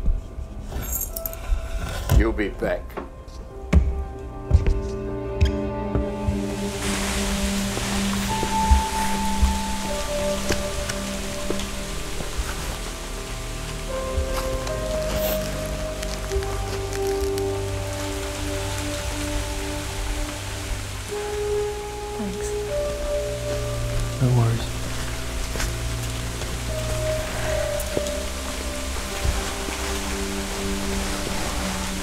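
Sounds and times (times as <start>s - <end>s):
slow film score: 0.0s - 32.0s
steady rain falling: 5.9s - 32.0s.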